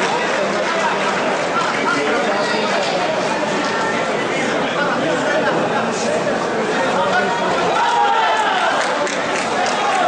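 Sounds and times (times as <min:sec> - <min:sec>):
crowd chatter and calls: 0:00.0 - 0:10.0.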